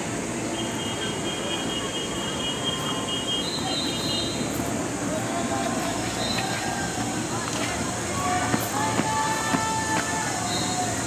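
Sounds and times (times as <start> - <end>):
steady outdoor background noise: 0.0 - 11.0
faint distant voices: 0.1 - 11.0.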